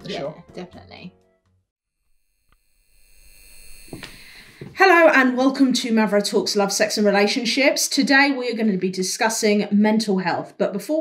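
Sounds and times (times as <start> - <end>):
high-pitched electronic whine: 2.0 - 4.5.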